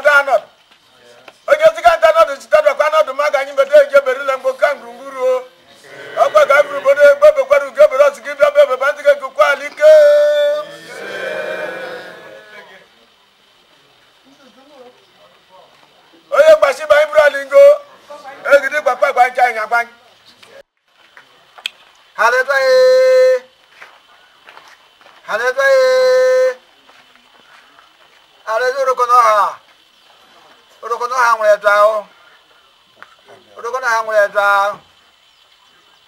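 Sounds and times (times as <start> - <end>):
faint background noise: 0.0 - 36.0
man calling out: 1.5 - 12.9, 16.3 - 20.0, 22.2 - 23.5, 25.3 - 26.6
group of voices answering: 4.8 - 13.2
man holding long vowel: 5.8 - 7.9, 9.8 - 12.9.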